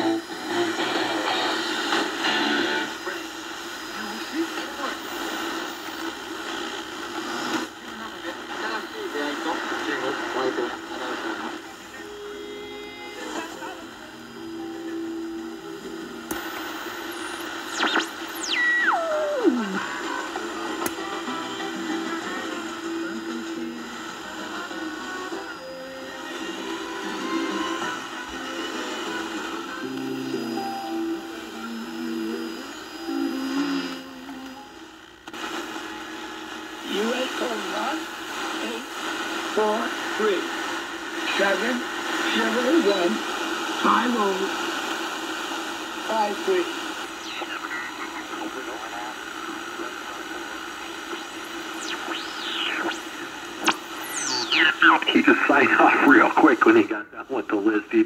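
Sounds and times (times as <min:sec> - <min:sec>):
music on shortwave radio: 0:00.0 - 0:58.0
radio static: 0:00.0 - 0:58.0
voice on radio: 0:07.3 - 0:12.1, 0:46.1 - 0:50.4, 0:54.4 - 0:58.0.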